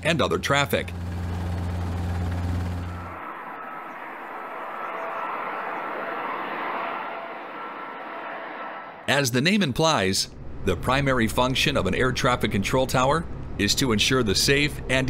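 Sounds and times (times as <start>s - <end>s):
helicopter drone: 0.0s - 9.1s
jet airliner engine rushing: 0.5s - 9.1s.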